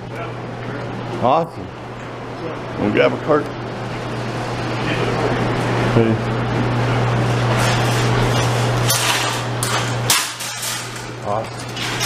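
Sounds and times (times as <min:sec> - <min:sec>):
steady low hum: 0:00.0 - 0:12.0
metal shopping cart rattling: 0:07.6 - 0:12.0.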